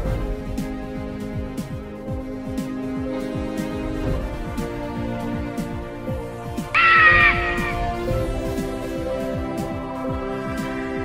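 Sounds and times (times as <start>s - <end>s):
eagle screech: 6.8s - 8.0s
intro music with drum beat: 6.8s - 9.5s.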